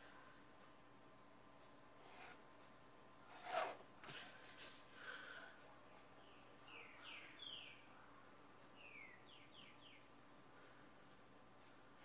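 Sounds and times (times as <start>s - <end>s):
ruler sliding across paper: 3.3s - 4.8s.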